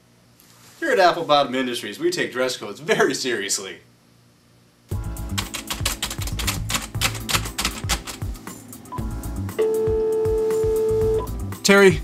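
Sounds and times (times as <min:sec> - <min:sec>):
background music: 0:04.9 - 0:12.0
keyboard keys clicking: 0:05.3 - 0:08.4.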